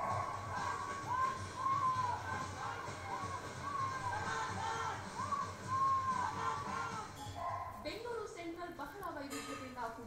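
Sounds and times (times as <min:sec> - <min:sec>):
music: 0:00.0 - 0:09.5.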